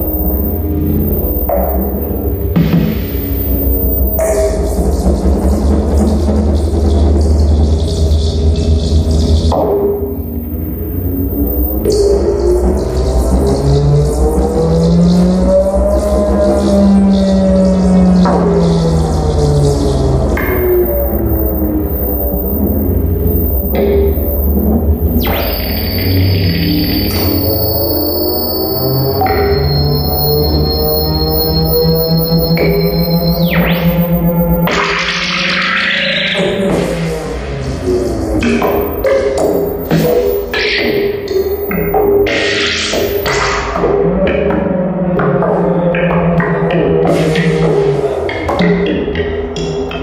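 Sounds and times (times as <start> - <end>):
deep drone: 0.0 - 50.0
synthesizer gliding tones: 0.0 - 50.0.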